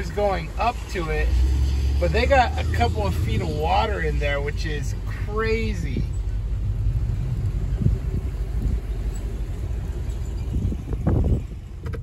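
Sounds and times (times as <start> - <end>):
car rumble from inside cabin: 0.0 - 12.0.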